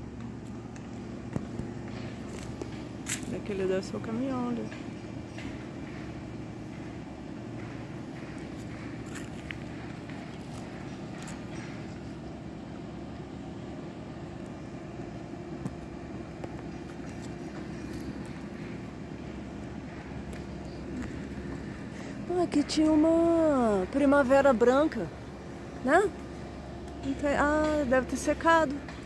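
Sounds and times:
faint footsteps: 0.0s - 4.1s, 4.7s - 12.1s
low machine hum: 0.0s - 29.0s.

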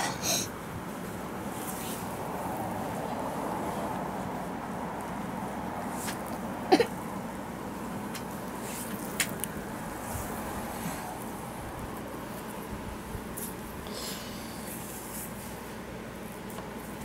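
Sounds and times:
steady background hiss: 0.0s - 17.0s.

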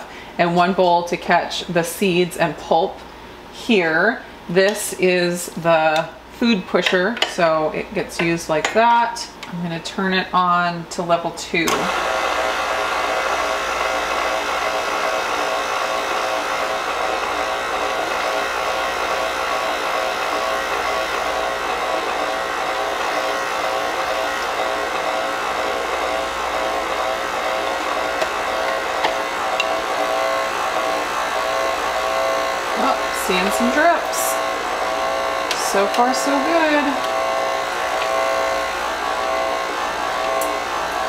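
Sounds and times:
stand mixer motor running: 11.7s - 41.0s.

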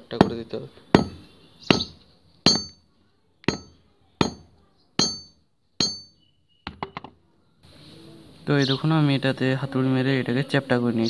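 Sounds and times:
hammer striking steel rod: 0.0s - 2.8s, 3.4s - 7.1s.

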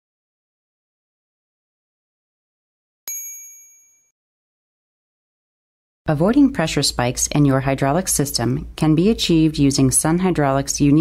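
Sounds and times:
bright metallic ding: 3.1s - 4.1s.

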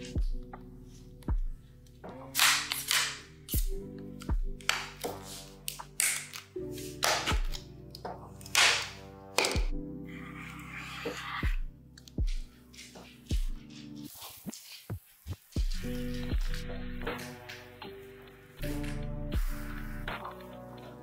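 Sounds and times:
hip-hop beat with deep bass: 0.0s - 6.0s, 11.4s - 14.0s, 15.2s - 21.0s
plastic pail lid snapping: 8.4s - 9.7s.

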